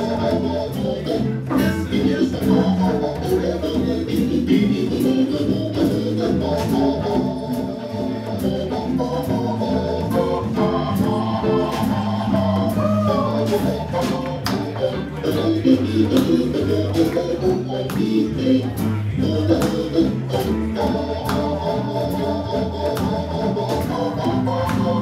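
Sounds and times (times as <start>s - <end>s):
hammond organ chords: 0.0s - 25.0s.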